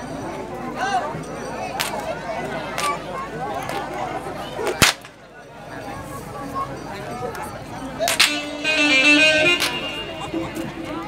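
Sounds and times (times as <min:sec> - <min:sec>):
crowd chatter: 0:00.0 - 0:11.0
whip crack: 0:01.8 - 0:02.0, 0:04.8 - 0:05.2, 0:08.0 - 0:08.4.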